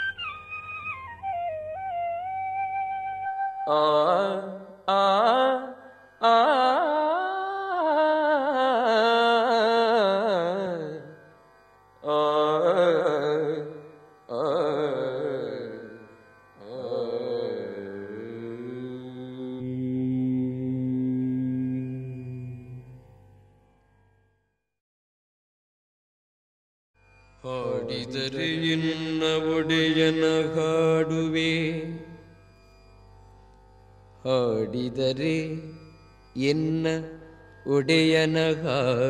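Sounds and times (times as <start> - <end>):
devotional song melody: 0.0 - 10.9
man singing ornamented phrase: 3.6 - 10.9, 27.5 - 32.0.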